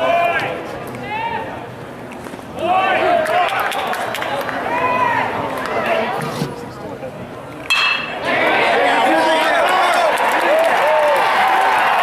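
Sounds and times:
spectators chattering: 0.0s - 12.0s
metal bat hitting ball: 7.7s - 8.2s.

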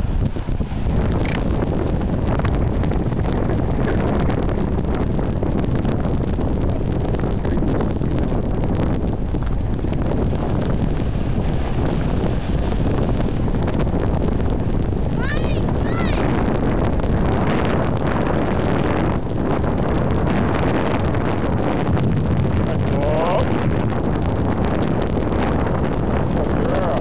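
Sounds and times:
wind blowing across microphone: 0.0s - 27.0s.

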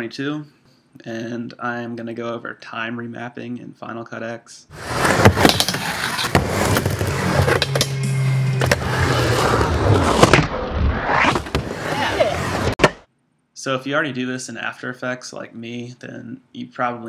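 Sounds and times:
skateboard wheels rolling on ramp: 4.7s - 8.0s, 8.6s - 13.0s.

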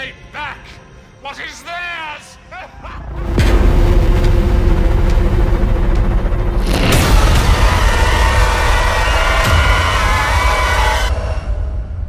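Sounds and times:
low drone: 3.0s - 12.0s
deep booming rumble: 3.1s - 12.0s
sharp hit: 3.2s - 11.2s.

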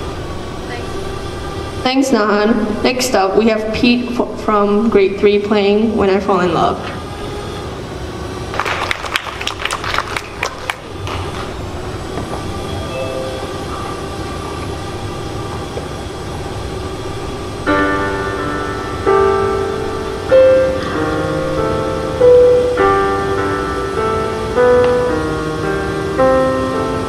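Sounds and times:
room hum: 0.0s - 27.0s
people clapping: 8.5s - 11.6s
piano playing slow chords: 10.7s - 27.0s.

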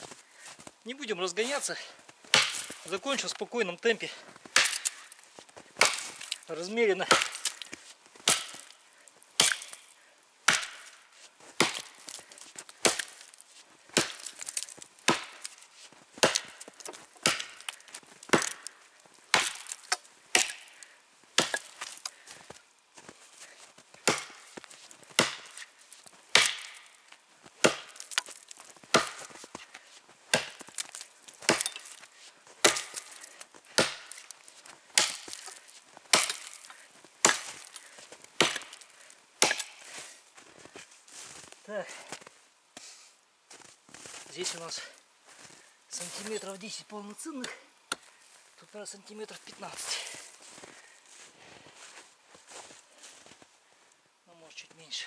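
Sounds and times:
axe chopping tree trunk: 2.3s - 2.9s, 4.5s - 5.2s, 5.8s - 8.8s, 9.4s - 9.9s, 10.5s - 11.0s, 11.6s - 15.6s, 16.2s - 22.2s, 24.0s - 25.7s, 26.3s - 27.0s, 27.6s - 29.7s, 30.3s - 32.0s, 32.6s - 39.9s.

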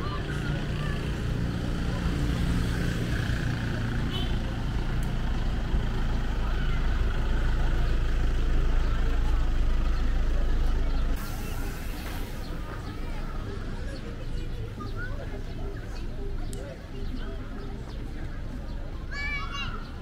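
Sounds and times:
faint voices of people: 0.0s - 20.0s.

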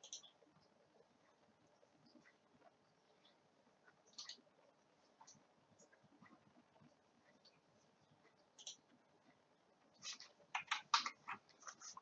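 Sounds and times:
light clicks of computer controls: 0.0s - 12.0s.

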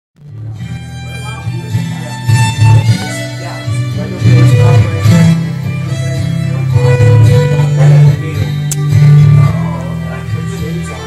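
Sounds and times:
acoustic guitar strumming: 0.2s - 11.0s
bowed fiddle melody: 0.2s - 11.0s.

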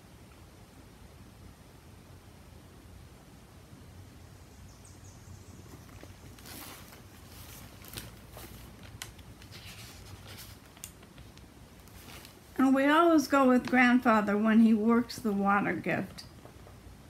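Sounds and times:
book pages turning: 5.7s - 12.6s.

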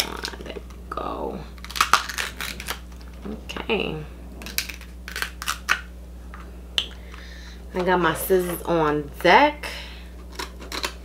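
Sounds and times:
crab shell cracking: 1.6s - 3.2s, 4.4s - 5.9s, 10.2s - 11.0s.

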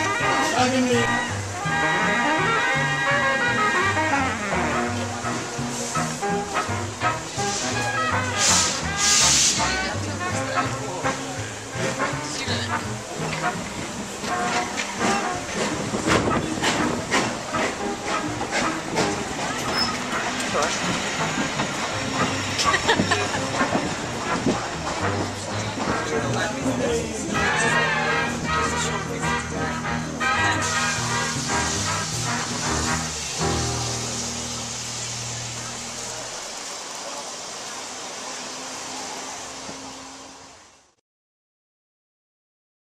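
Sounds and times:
music: 0.0s - 36.2s
steam locomotive hissing steam: 0.0s - 41.0s
voices on platform: 14.2s - 34.0s.

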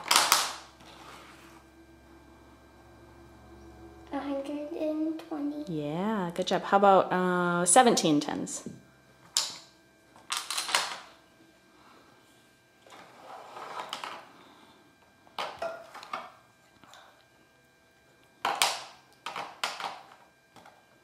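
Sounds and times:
rods scraping on table: 0.8s - 1.7s, 12.9s - 14.2s.

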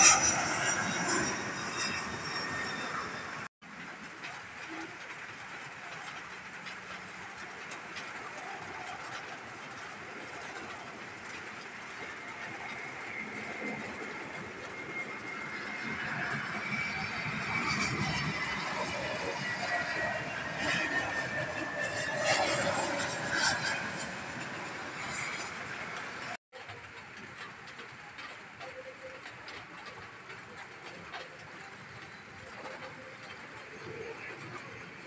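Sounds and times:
high engine whine: 0.0s - 35.0s
jet engine rush: 0.0s - 35.0s.

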